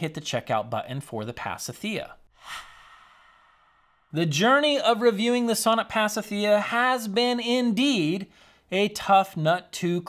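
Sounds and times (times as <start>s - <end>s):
man speaking: 0.0s - 2.3s, 4.1s - 10.0s
man's short breath: 2.3s - 4.1s.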